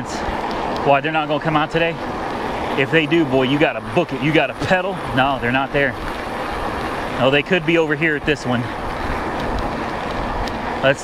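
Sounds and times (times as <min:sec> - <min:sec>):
tyres rolling on road: 0:00.0 - 0:11.0.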